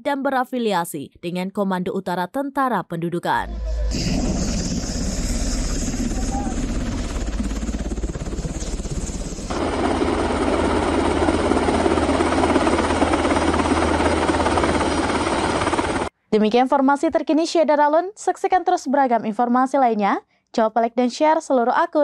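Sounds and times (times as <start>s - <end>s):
helicopter rotor and engine: 3.6s - 16.1s.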